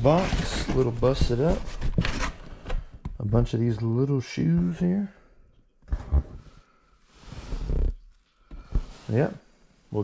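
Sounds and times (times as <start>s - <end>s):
cardboard rustle: 0.0s - 2.8s.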